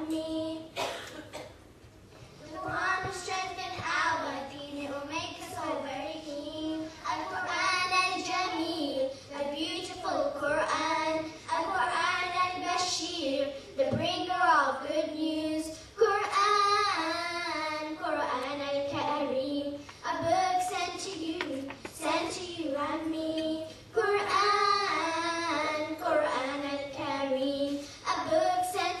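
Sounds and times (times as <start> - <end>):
children singing: 6.7 - 29.0.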